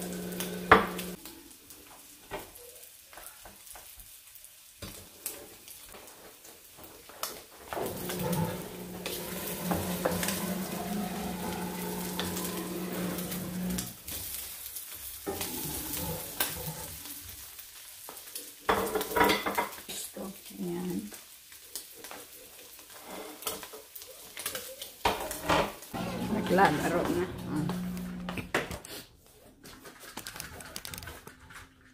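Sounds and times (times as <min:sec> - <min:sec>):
food sizzling in oil: 0:00.0 - 0:28.4
spatula scraping and tapping pan: 0:06.8 - 0:13.9, 0:15.2 - 0:17.0.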